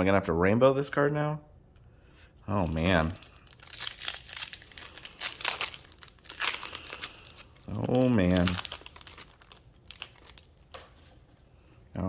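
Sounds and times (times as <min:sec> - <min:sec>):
foil wrapper crinkling: 0:02.5 - 0:11.8.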